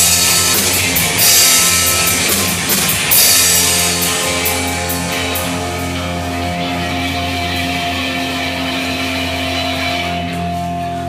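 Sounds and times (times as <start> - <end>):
rock band playing chords: 0.0 - 11.0.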